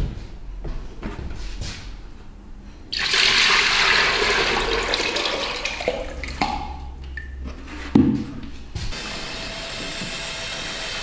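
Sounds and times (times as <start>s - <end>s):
liquid pouring between buckets: 2.9s - 7.4s.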